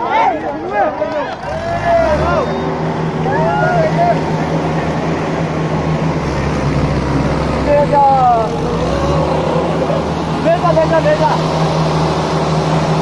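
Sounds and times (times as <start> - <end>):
men shouting: 0.0 - 5.0, 7.6 - 11.4
tractor engine running under load: 1.3 - 13.0.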